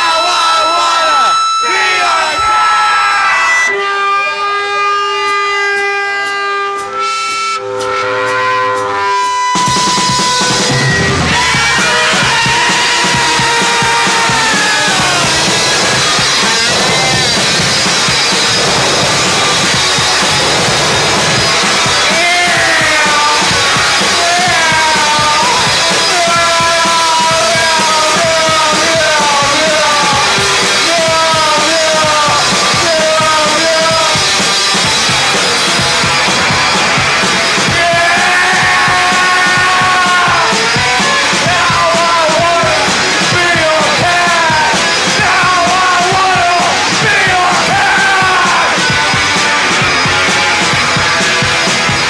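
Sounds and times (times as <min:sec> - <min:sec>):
electric guitar: 0:03.2 - 0:52.0
drum kit pounding: 0:04.9 - 0:52.0
punk rock band playing live: 0:06.8 - 0:52.0.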